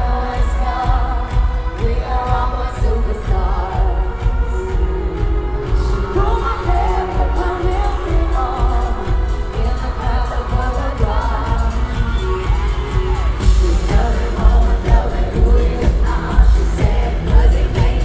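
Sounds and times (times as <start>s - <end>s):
electronic dance pop track: 0.0s - 18.0s
woman singing into a microphone: 0.0s - 18.0s.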